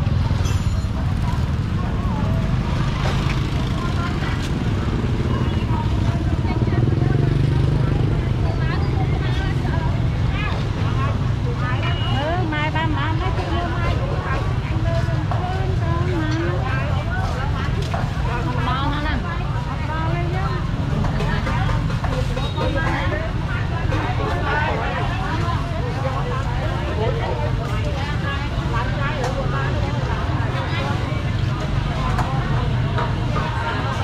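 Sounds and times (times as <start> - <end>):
motorbikes running: 0.0 - 34.0
people talking: 0.0 - 34.0.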